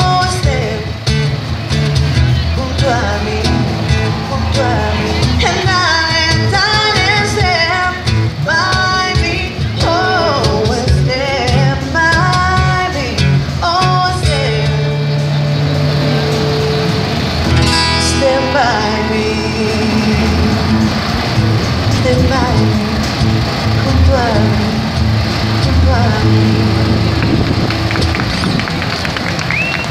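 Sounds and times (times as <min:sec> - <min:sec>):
woman singing into microphone: 0:00.0 - 0:01.0, 0:02.6 - 0:15.0, 0:17.9 - 0:21.0, 0:21.8 - 0:23.2, 0:23.8 - 0:27.1
cajon drum: 0:00.0 - 0:18.3, 0:19.7 - 0:29.9
acoustic guitar: 0:00.0 - 0:29.9.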